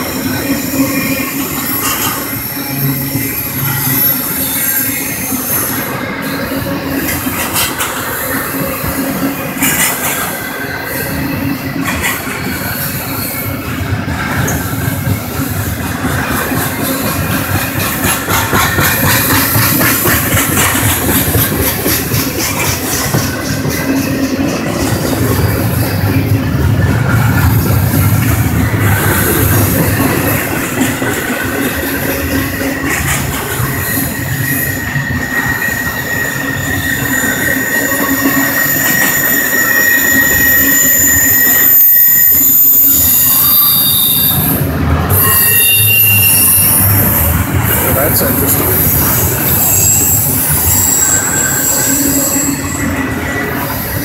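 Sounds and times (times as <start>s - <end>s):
train wheels rolling on rails: 0.0s - 54.0s
high-pitched wheel squeal: 8.0s - 14.7s, 27.4s - 54.0s.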